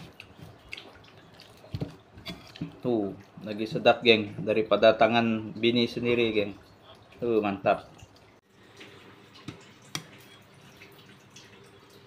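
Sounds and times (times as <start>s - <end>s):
clicks and wet ticks of eating: 0.0s - 3.6s.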